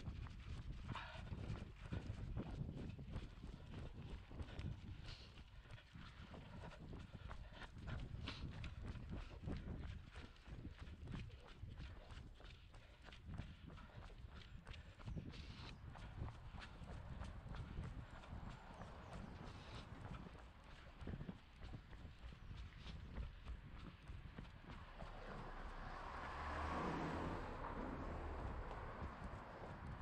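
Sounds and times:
running footsteps on stone: 0.0s - 30.0s
low rumble: 23.2s - 30.0s.

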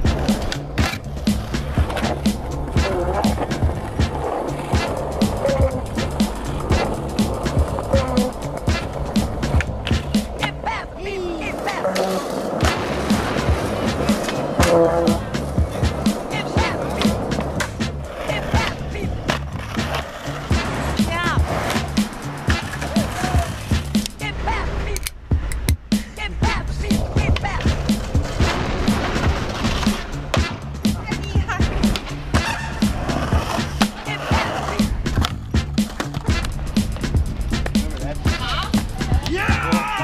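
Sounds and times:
music with steady beat: 0.0s - 10.6s, 12.6s - 24.3s, 25.2s - 40.0s
skateboard clacks: 0.0s - 24.6s, 26.4s - 40.0s
skateboard wheels rolling: 0.0s - 25.0s, 26.2s - 40.0s.

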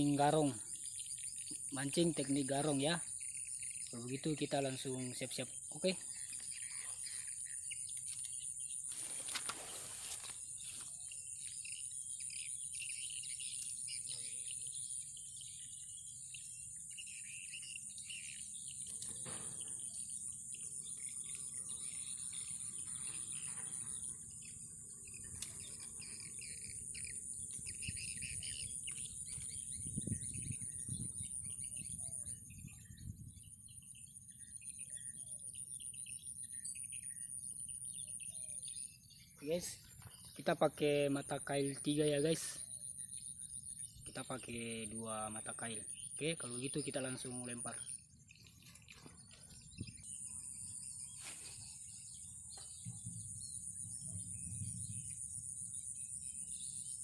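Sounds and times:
birds chirping: 0.0s - 57.0s
high-pitched insect drone: 0.0s - 57.0s.

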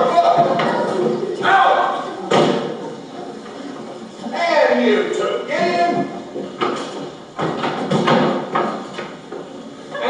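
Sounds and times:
voices: 0.0s - 6.9s.

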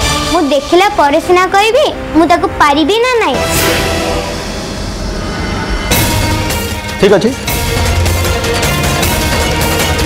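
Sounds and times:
dramatic background score: 0.0s - 10.0s
sharp musical hit: 3.3s - 8.5s.

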